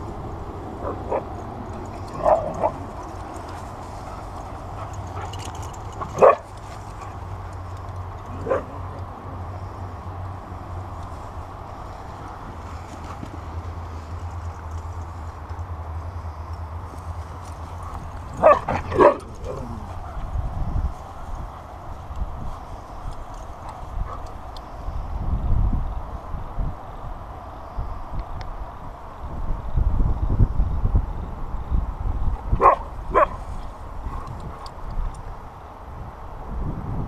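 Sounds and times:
steady low rumble: 0.0s - 27.4s
dog barking: 6.2s - 6.5s, 8.4s - 8.8s, 18.4s - 20.2s, 32.6s - 33.4s.

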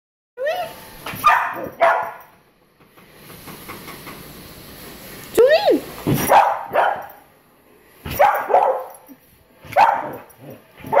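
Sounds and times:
dog yipping: 0.4s - 2.2s, 6.2s - 7.2s, 8.1s - 9.1s, 9.7s - 11.0s
young dog barking: 1.2s - 2.2s, 6.3s - 7.1s, 8.1s - 8.9s, 9.7s - 10.3s.

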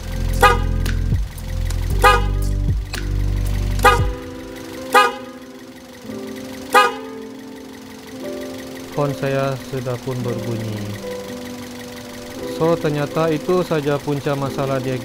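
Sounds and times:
electric car horn: 0.0s - 2.7s, 3.3s - 8.4s
low steady hum: 0.0s - 15.0s.

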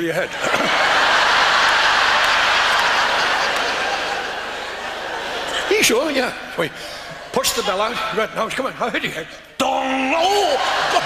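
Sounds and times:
audience laughing: 0.0s - 8.8s, 10.3s - 11.0s.

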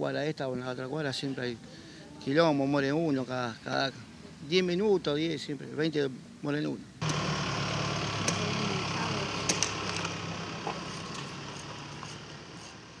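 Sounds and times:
low engine hum: 7.0s - 13.0s.

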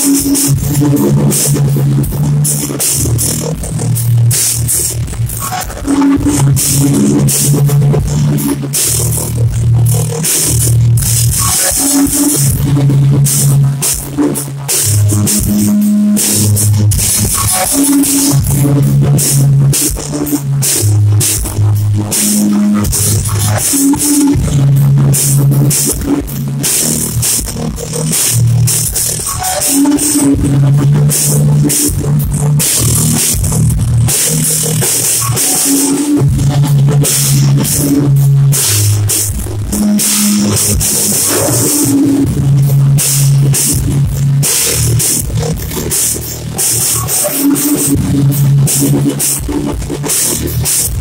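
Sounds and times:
distorted low guitar riff: 0.0s - 51.0s
drums: 0.0s - 51.0s.

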